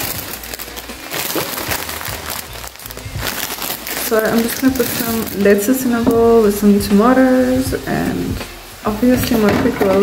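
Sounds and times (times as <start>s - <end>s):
plastic bag crinkling: 0.0s - 6.3s.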